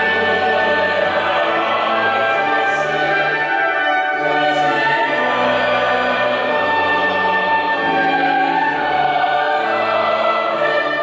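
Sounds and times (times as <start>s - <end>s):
choir singing held chords: 0.0s - 11.0s.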